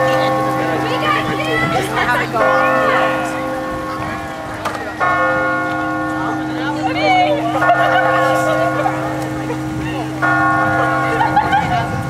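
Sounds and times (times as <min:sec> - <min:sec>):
bell ringing: 0:00.0 - 0:12.0
voices chattering: 0:00.0 - 0:12.0.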